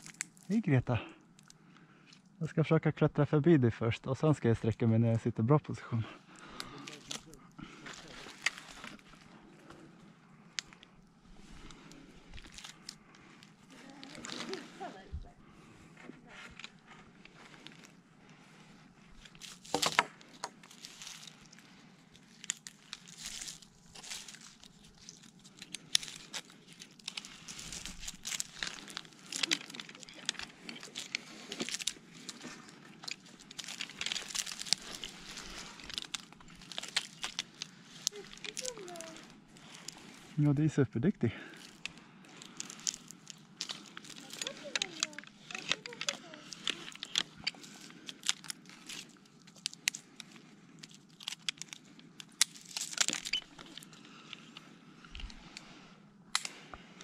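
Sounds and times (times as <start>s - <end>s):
rope and clothing rustling on bark: 6.2s - 55.8s
carabiners clicking: 41.5s - 55.4s.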